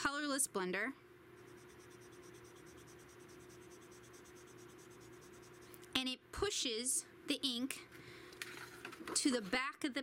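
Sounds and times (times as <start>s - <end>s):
low steady hum: 0.0s - 10.0s
marker nib scratching on card: 1.4s - 5.8s.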